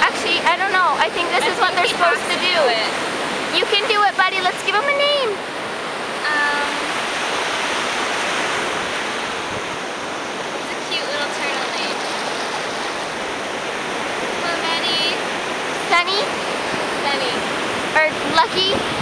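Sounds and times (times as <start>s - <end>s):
waves washing up a beach: 0.0s - 19.0s
girl's voice: 3.5s - 5.4s, 6.2s - 6.9s, 15.9s - 16.3s, 18.0s - 18.9s.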